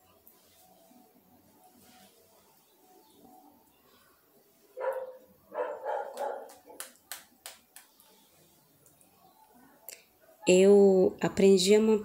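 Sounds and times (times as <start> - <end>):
dog barking: 4.8 - 6.8.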